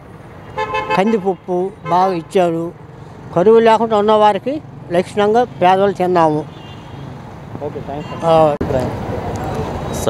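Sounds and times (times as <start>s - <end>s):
road traffic noise: 0.0s - 10.0s
man speaking: 0.9s - 6.5s, 7.6s - 9.0s.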